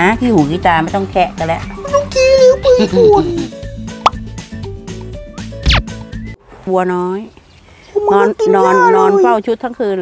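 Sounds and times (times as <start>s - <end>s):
background music: 0.0s - 6.4s.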